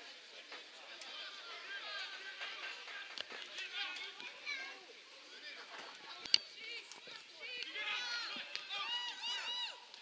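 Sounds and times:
footballers shouting: 6.1 - 10.0.

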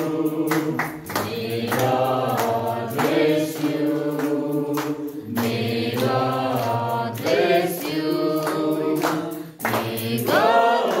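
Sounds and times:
group singing without instruments: 0.0 - 11.0.

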